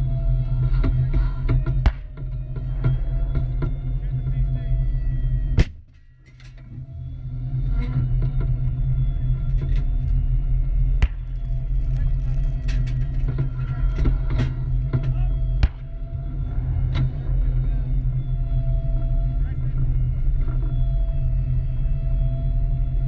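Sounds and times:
vehicle engine rumbling: 0:00.0 - 0:23.0
sharp bangs: 0:01.6 - 0:02.4, 0:05.6 - 0:06.2, 0:11.0 - 0:11.6.

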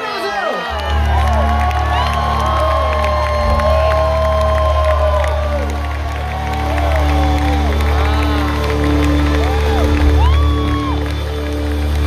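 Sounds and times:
crowd cheering and whooping: 0:00.0 - 0:12.0.

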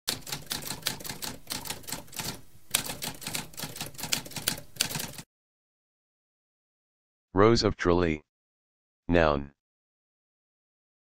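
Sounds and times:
typewriter keystrokes: 0:00.1 - 0:05.2.

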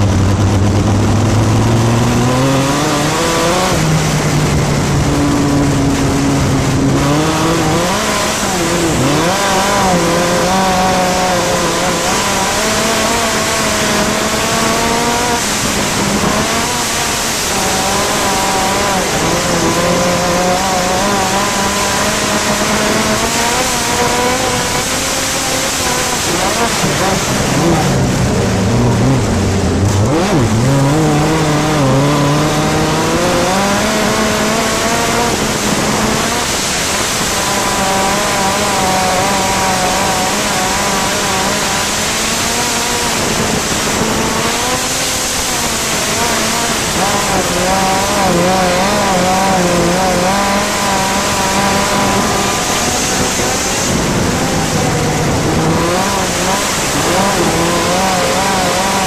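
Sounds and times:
racing engine at full speed: 0:00.0 - 0:59.0
wind rush: 0:00.0 - 0:59.0.

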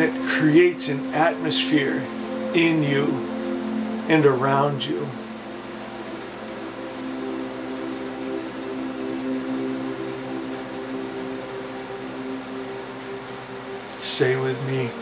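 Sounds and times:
ambient drone music: 0:00.0 - 0:15.0.

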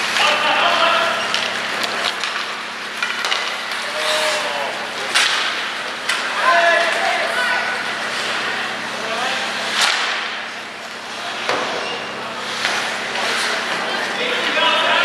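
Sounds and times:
hockey sticks and puck cracking: 0:00.0 - 0:07.4, 0:09.7 - 0:11.8.

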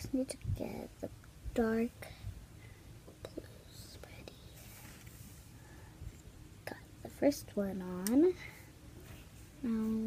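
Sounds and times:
faint whispering: 0:03.2 - 0:05.0.

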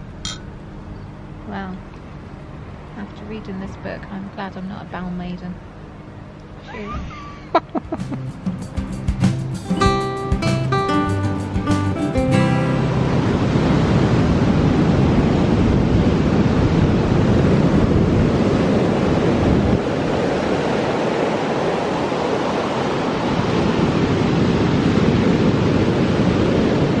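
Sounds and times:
waves breaking on beach: 0:12.7 - 0:27.0.

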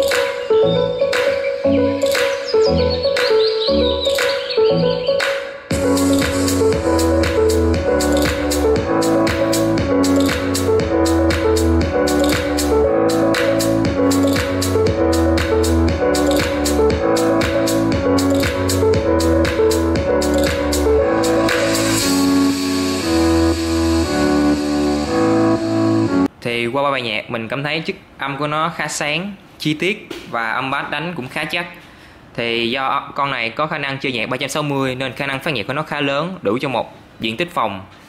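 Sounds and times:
electronic music with strong bass: 0:00.0 - 0:26.3.

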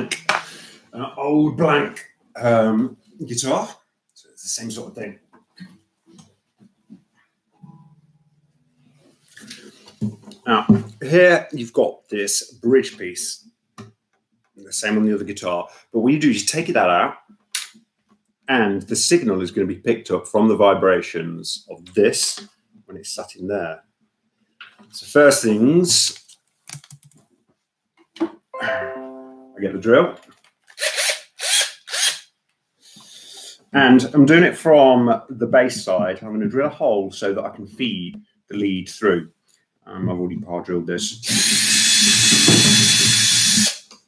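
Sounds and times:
guitar strings ringing: 0:28.6 - 0:29.8.

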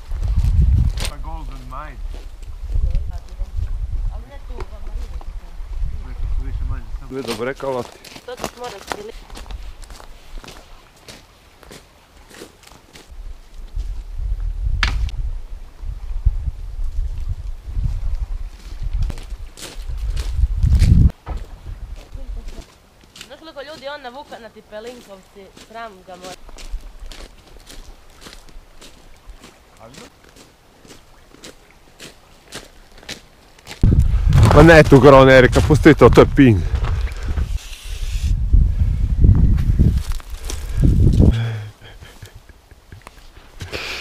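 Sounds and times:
footsteps on gravel: 0:07.2 - 0:13.1, 0:19.1 - 0:37.4, 0:39.8 - 0:41.4.

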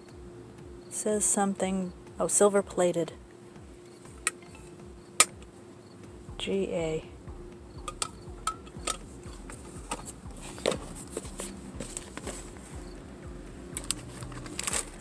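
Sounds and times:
steady low hum: 0:00.0 - 0:15.0
taps and clicks of items set down: 0:07.8 - 0:12.8, 0:13.8 - 0:15.0.

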